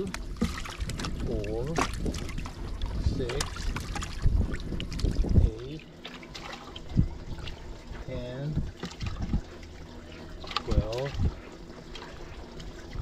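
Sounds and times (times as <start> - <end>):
wind rumble on microphone: 0.0 - 5.8, 6.8 - 9.5, 10.6 - 11.5
fish flapping and splashing in water: 0.0 - 7.9, 8.7 - 13.0.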